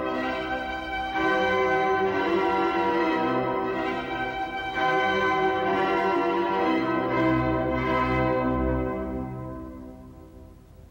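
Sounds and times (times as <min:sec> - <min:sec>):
church bells ringing: 0:00.0 - 0:10.3.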